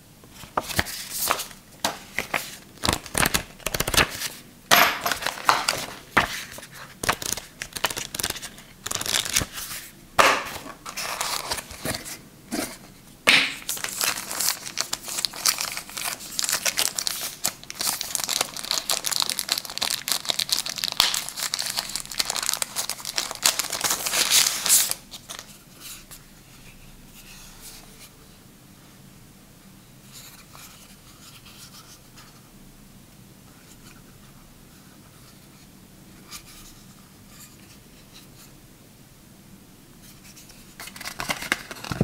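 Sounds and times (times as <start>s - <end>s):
plastic wrap crinkling: 0.5s - 4.4s, 5.0s - 9.8s, 13.6s - 25.6s.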